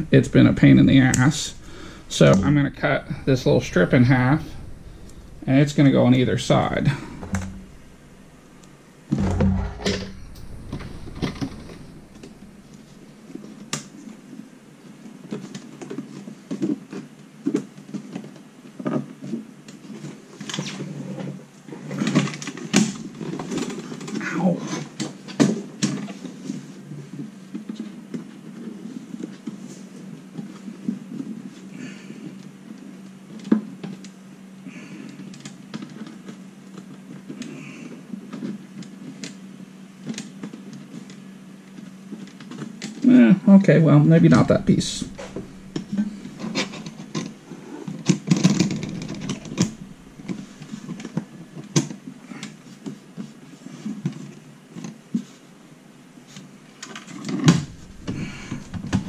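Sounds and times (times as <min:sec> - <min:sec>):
heavy bump: 0:00.0 - 0:14.0, 0:44.1 - 0:47.4, 0:48.4 - 0:51.2, 0:57.5 - 0:59.0
steady low hum: 0:00.0 - 0:14.4, 0:43.3 - 0:51.8, 0:57.5 - 0:59.0.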